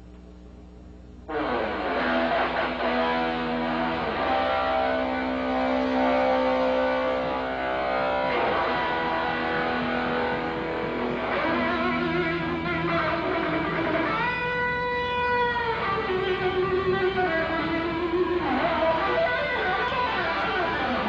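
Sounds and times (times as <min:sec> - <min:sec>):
electric guitar lead line: 0:01.2 - 0:21.0
bass guitar: 0:01.3 - 0:21.0.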